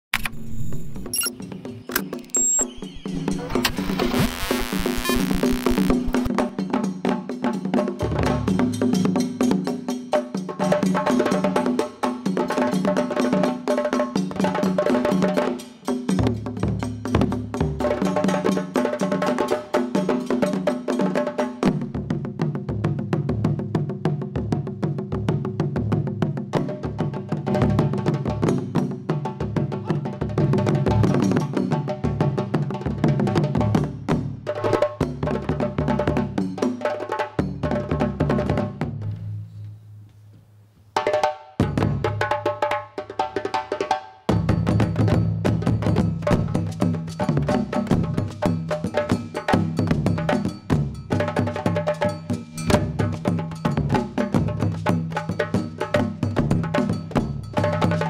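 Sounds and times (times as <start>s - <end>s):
percussion ensemble drumming: 0.4s - 39.1s, 41.0s - 58.0s.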